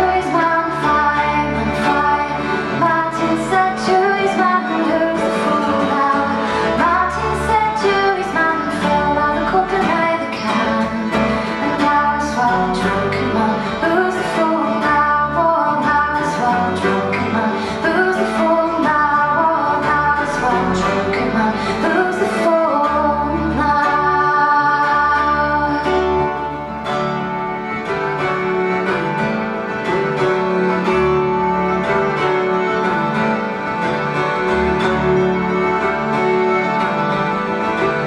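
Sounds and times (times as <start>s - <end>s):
woman singing: 0.0s - 26.7s
acoustic guitar: 0.0s - 38.0s
button accordion: 0.0s - 38.0s
double bass: 0.0s - 38.0s
plucked mandolin: 0.0s - 38.0s.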